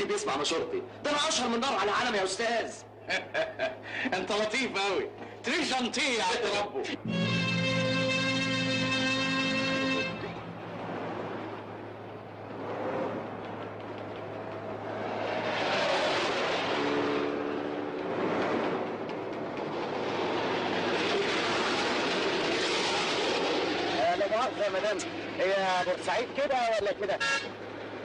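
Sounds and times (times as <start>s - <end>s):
cars passing on a road: 2.8s - 28.0s
car horn: 7.0s - 10.5s, 27.2s - 27.6s.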